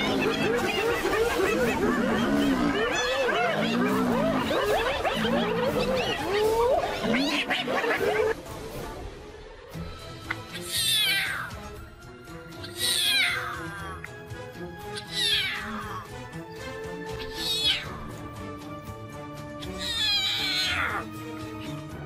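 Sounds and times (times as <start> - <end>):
lion cub mewing: 0.0 - 8.4, 10.4 - 11.6, 12.6 - 14.1, 14.8 - 16.2, 17.1 - 18.2, 19.6 - 21.8
background music with held tones: 0.0 - 22.0.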